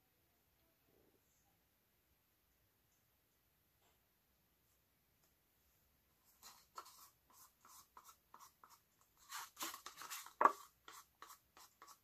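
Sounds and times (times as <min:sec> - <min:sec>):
stir stick scraping paper cup: 0:06.4 - 0:12.0.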